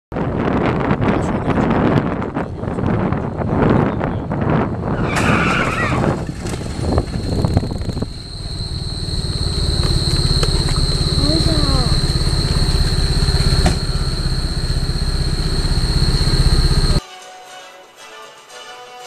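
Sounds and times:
wind and road noise: 0.1s - 17.0s
vehicle engine running: 6.2s - 17.0s
high steady whine: 6.9s - 17.0s.

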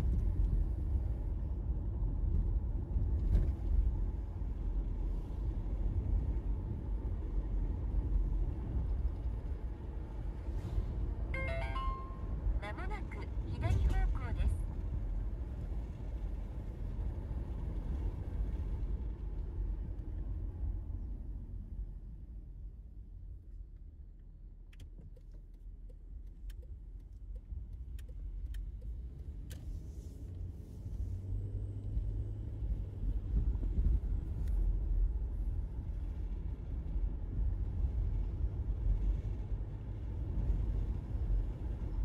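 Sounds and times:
car road and engine rumble: 0.0s - 42.0s
electronic chime of rising notes: 11.4s - 12.4s.

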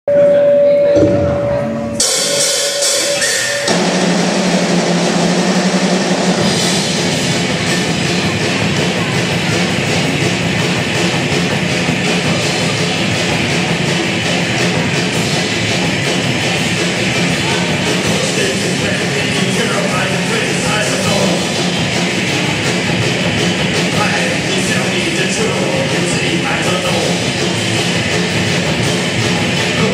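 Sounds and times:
rock band playing: 1.0s - 29.9s.

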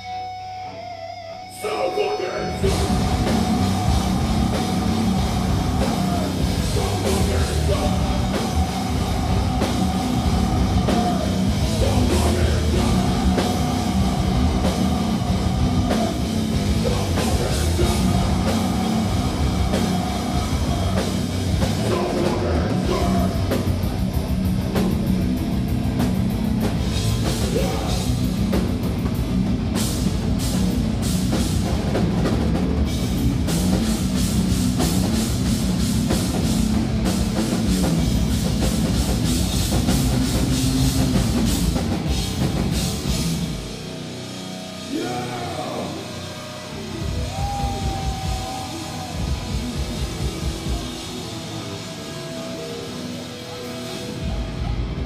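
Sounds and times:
heavy metal band playing live: 0.0s - 55.0s.

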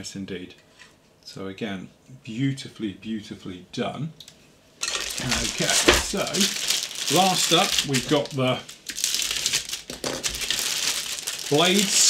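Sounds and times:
plastic bag crinkling: 4.8s - 12.0s.

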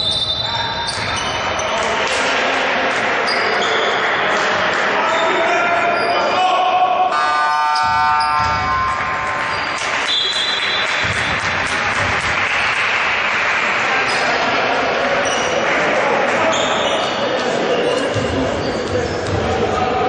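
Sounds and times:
players' voices echoing: 0.0s - 20.0s
basketball bouncing on wooden court: 7.8s - 12.4s.

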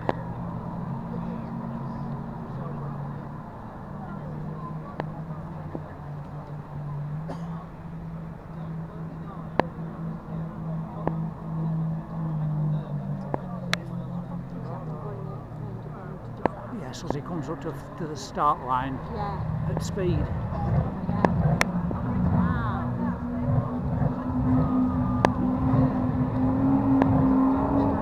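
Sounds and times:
distant powerboat engine drone: 0.0s - 28.0s.

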